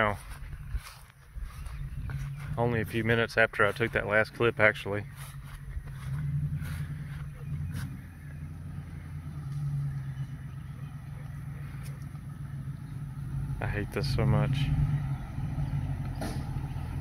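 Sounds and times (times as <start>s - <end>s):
truck engine droning at low speed: 0.0s - 17.0s
faint clicks: 11.2s - 12.2s.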